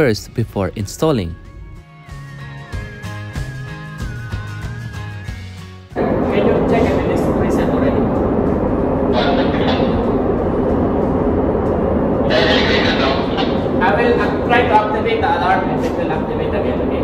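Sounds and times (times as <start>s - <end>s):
background music: 0.0s - 15.6s
loud steady rumbling: 6.0s - 17.0s
man speaking into handheld radio: 12.3s - 17.0s.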